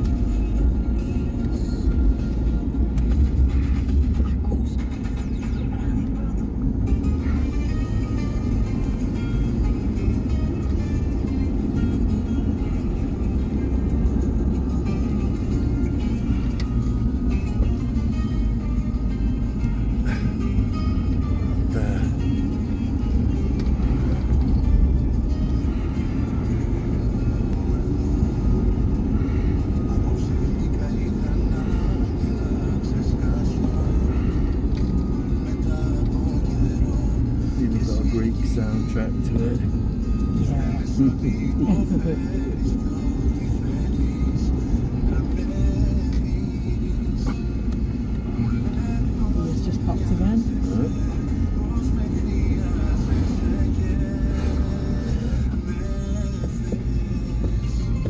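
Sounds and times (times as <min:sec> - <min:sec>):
car road and engine rumble: 0:00.0 - 0:58.0
music with singing: 0:00.0 - 0:58.0.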